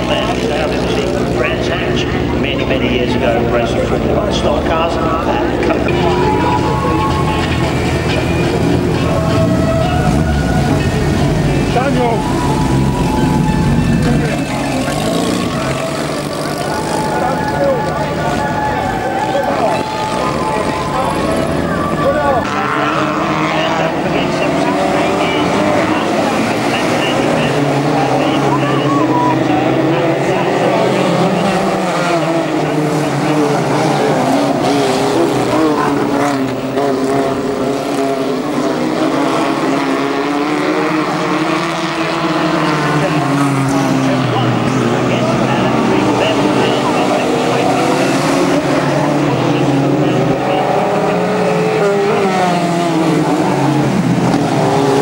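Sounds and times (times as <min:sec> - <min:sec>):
racing car engines revving: 0:00.0 - 0:55.0.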